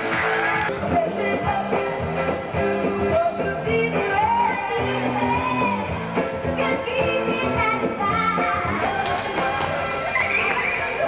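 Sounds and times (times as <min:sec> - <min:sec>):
upbeat music: 0:00.0 - 0:11.0.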